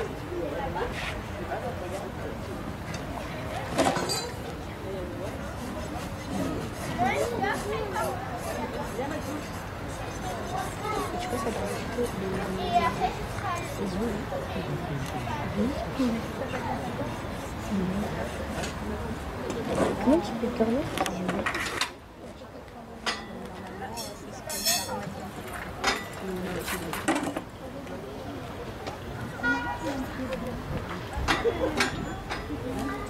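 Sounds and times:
faint voices talking: 0:00.0 - 0:33.0.

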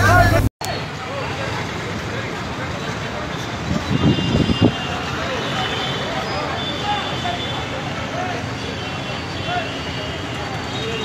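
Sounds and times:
people's voices: 0:00.0 - 0:11.0
traffic: 0:00.0 - 0:11.0.

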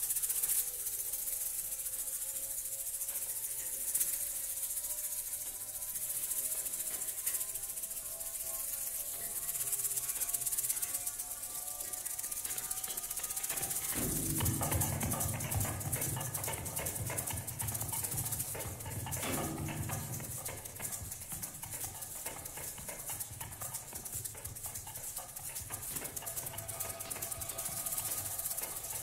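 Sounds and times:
hand percussion rattling and clicking: 0:00.0 - 0:29.0
short low percussion sound: 0:13.8 - 0:21.2, 0:25.9 - 0:29.0.

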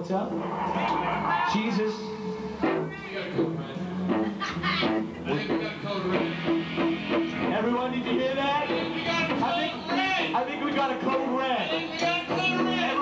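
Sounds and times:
voices: 0:00.3 - 0:06.5.

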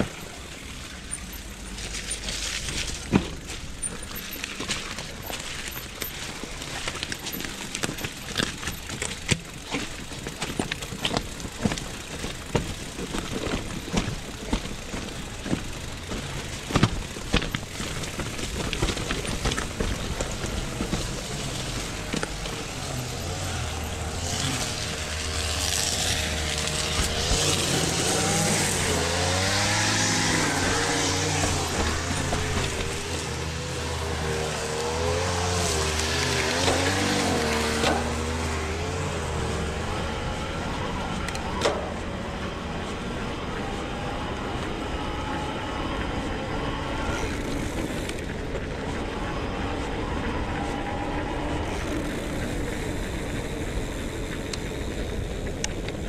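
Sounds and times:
bike tyre noise: 0:00.0 - 0:56.0.

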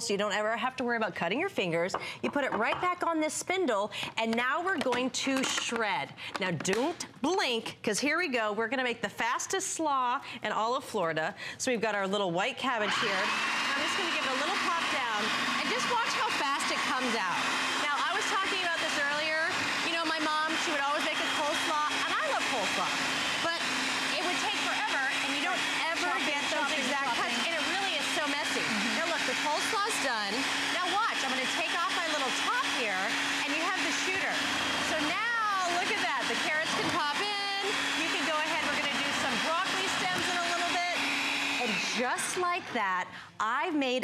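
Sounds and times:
food processor motor humming: 0:12.7 - 0:42.8
blade shredding cabbage: 0:12.9 - 0:42.7.

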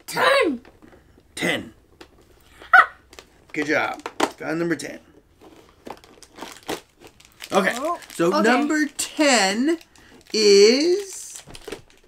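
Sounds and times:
cardboard crinkling and crackling: 0:05.2 - 0:12.0.

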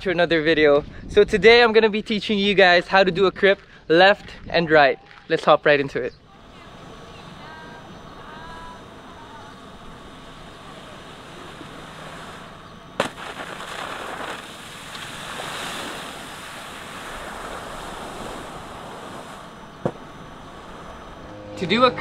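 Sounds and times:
hiss of water spray and wind: 0:07.1 - 0:20.8.

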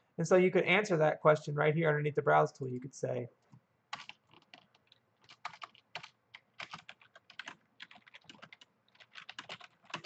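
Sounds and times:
typing on computer keyboard: 0:03.9 - 0:10.0.

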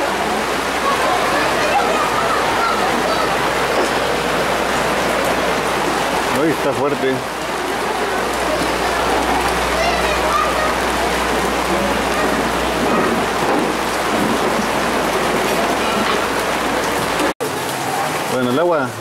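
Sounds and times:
faint voices: 0:00.0 - 0:19.0
heavy rain on the street: 0:00.0 - 0:19.0.

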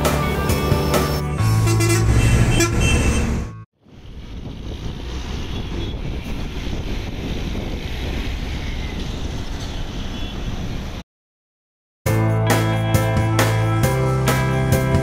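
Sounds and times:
diesel engine pulling away: 0:00.0 - 0:11.0
road traffic: 0:00.0 - 0:11.0
music with steady beat: 0:12.1 - 0:15.0.

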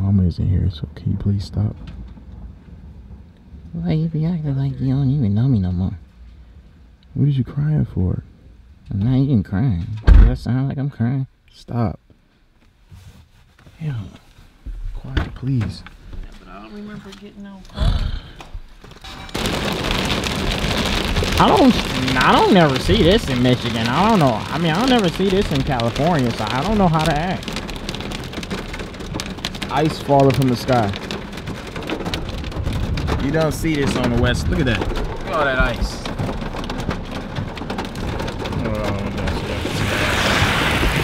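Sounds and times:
hail and rain pelting car roof: 0:18.8 - 0:41.0
storm hiss: 0:19.4 - 0:36.4, 0:37.9 - 0:41.0.

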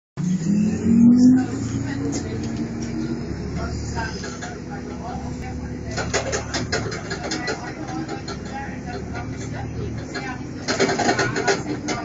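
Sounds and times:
bus engine droning: 0:00.2 - 0:12.0.

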